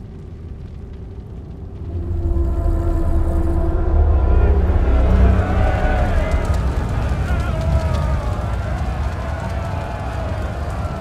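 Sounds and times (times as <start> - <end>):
deep rumbling: 0.0 - 11.0
long held low tones: 1.5 - 7.8.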